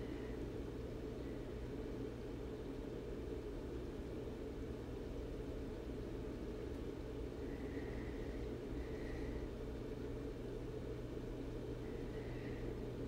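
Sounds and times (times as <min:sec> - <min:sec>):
room noise hum and hiss: 0:00.0 - 0:13.0.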